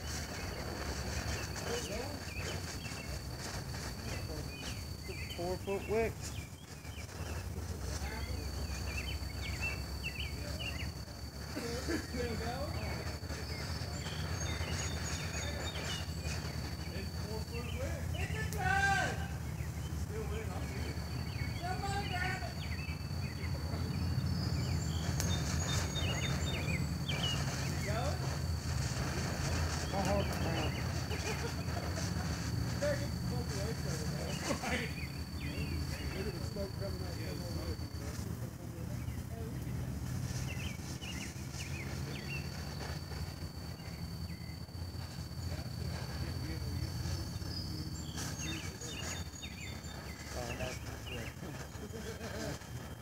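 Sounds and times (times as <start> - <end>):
birds chirping: 0.0 - 53.0
man laughing: 11.6 - 12.2, 31.1 - 32.1.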